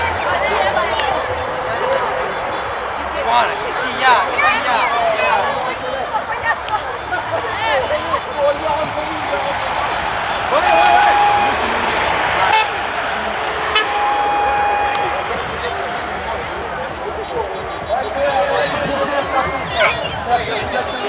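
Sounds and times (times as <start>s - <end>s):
outdoor noise: 0.0s - 21.0s
voices: 0.0s - 21.0s
vehicle horn blasts: 10.5s - 12.9s, 13.6s - 15.5s.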